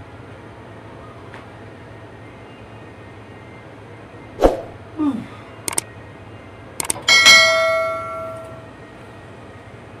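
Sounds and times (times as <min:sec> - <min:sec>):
quick clicks: 0:05.6 - 0:05.9, 0:06.8 - 0:07.0
bright bell ding: 0:07.1 - 0:08.6.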